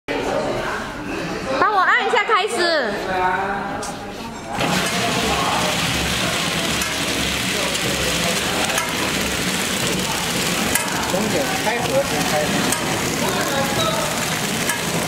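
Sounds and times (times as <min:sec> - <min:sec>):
packing machine running: 0:04.6 - 0:15.0.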